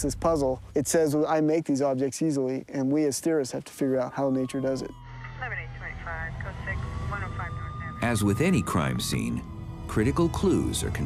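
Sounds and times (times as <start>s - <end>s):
thin wailing tone: 3.7s - 11.0s.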